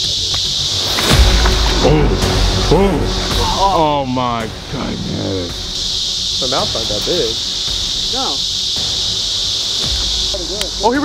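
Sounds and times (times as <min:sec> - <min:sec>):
insects chirping chorus: 0:00.0 - 0:11.0
man's voice: 0:01.7 - 0:05.6.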